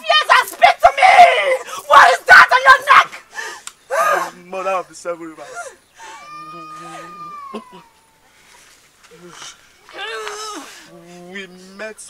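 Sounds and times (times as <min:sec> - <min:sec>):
person gasping and crying out: 0:05.5 - 0:08.0, 0:10.0 - 0:10.9.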